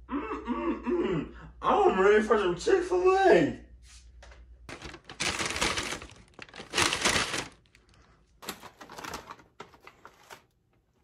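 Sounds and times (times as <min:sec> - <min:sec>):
paper bag rustling: 0:04.7 - 0:10.6.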